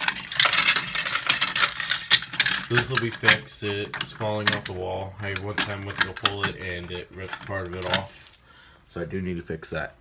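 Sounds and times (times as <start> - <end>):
keys jangling and clicking: 0.0 - 3.4, 7.8 - 8.4.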